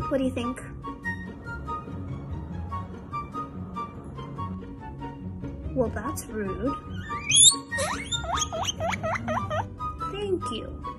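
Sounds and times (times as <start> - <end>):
guinea pig wheeking: 6.9 - 9.7.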